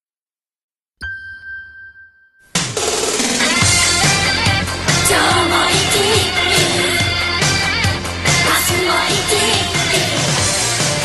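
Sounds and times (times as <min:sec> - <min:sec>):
bell-like chime: 0:01.0 - 0:02.6.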